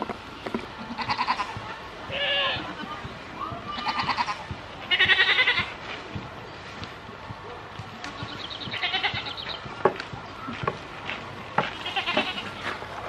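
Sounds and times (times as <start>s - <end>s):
goats bleating: 0.9s - 3.0s, 3.7s - 5.7s, 8.2s - 9.4s, 11.7s - 12.6s.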